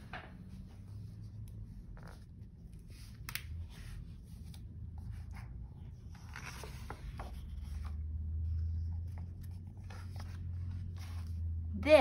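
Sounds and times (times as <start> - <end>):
book cover handling: 0.0 - 11.5.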